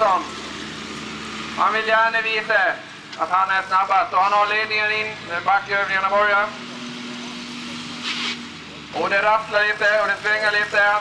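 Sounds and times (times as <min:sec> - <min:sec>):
distant tractor engine hum: 0:00.0 - 0:11.0
brief hiss: 0:08.0 - 0:08.5.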